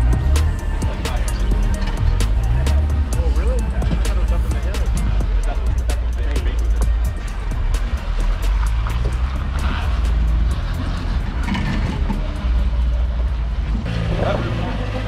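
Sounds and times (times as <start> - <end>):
background music: 0.0 - 15.0
car engine running low: 0.0 - 15.0
voices: 0.0 - 15.0.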